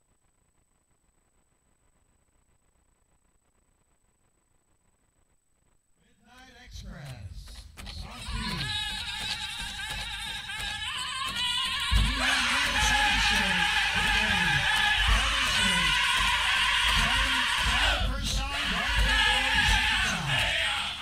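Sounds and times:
chanted voices: 8.0 - 21.0
steady drum beat: 8.3 - 21.0.

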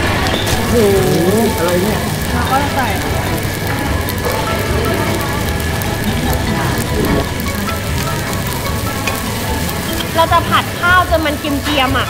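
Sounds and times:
rice sizzling on griddle: 0.0 - 12.0
rice being spooned and stirred: 0.2 - 11.7.

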